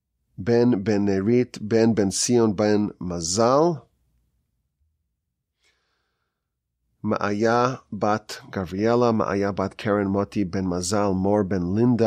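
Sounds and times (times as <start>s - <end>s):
man breathing in: 5.5s - 6.7s.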